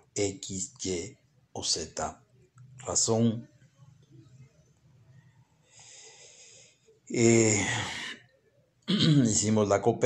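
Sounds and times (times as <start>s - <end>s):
man's faint breath: 5.6s - 6.9s.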